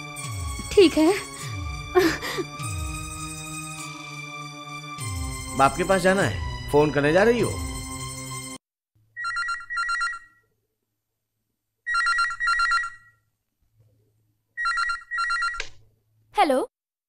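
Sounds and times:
landline telephone ringing: 0:09.2 - 0:10.4, 0:11.9 - 0:13.2, 0:14.6 - 0:15.6.

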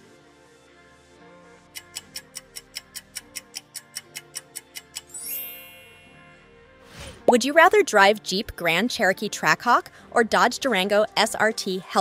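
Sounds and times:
soft background music: 0:00.0 - 0:12.0
fast clock ticking: 0:01.8 - 0:05.1.

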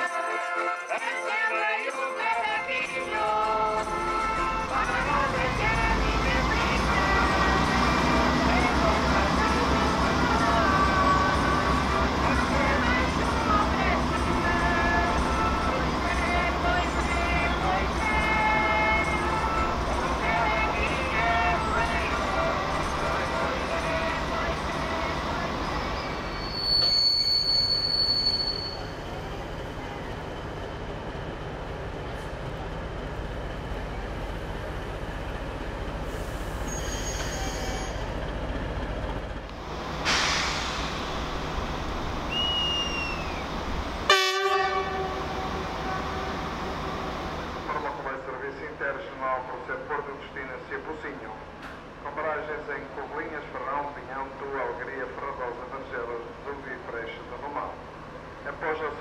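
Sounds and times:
train engine hum: 0:02.6 - 0:59.0
voices: 0:02.7 - 0:26.5, 0:44.8 - 0:59.0
train horn blast: 0:14.6 - 0:16.1, 0:44.0 - 0:46.7
shrill whistle: 0:25.8 - 0:29.1, 0:36.7 - 0:38.1, 0:42.3 - 0:43.6.

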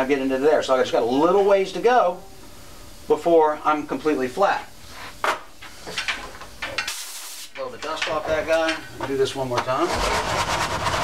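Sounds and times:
compressed air blast: 0:06.8 - 0:07.5.

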